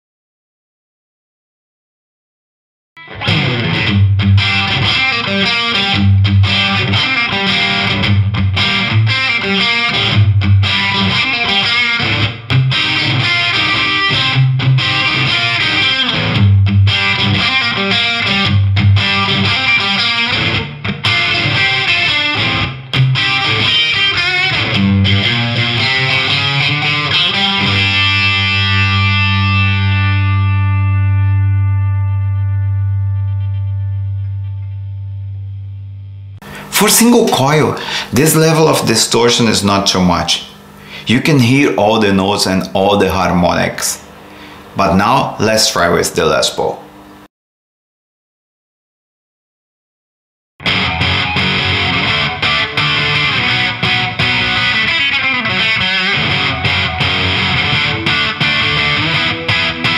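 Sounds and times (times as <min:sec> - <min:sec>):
distorted electric guitar riff: 0:03.0 - 0:45.4, 0:50.6 - 0:59.9.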